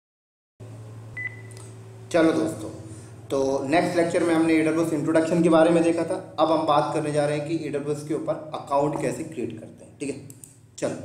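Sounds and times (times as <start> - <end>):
steady low hum: 0.6 - 11.0
high electronic beep: 1.2 - 1.5.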